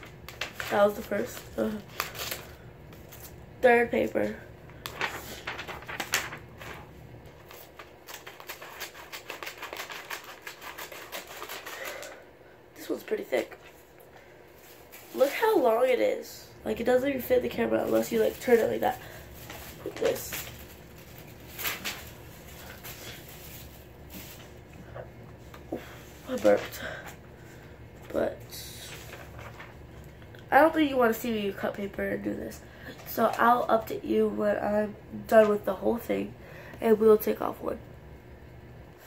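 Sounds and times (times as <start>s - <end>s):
paper rustling and crinkling: 0.0s - 12.2s, 14.5s - 15.7s, 17.3s - 27.2s, 28.0s - 30.1s
scissors snipping paper: 8.1s - 12.1s.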